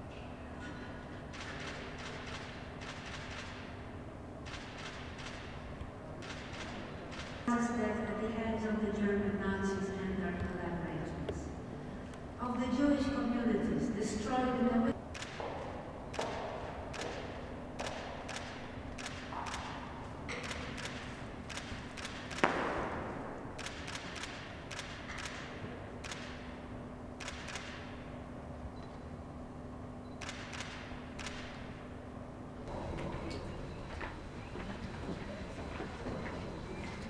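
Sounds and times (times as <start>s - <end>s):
faint steady hum: 0.0s - 37.0s
clicks and taps echoing: 15.1s - 23.0s.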